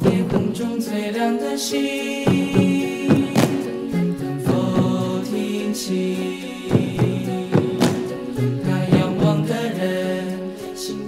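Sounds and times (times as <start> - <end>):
choir singing a cappella: 0.0 - 11.0
book slap percussion: 3.1 - 3.7, 7.6 - 8.2.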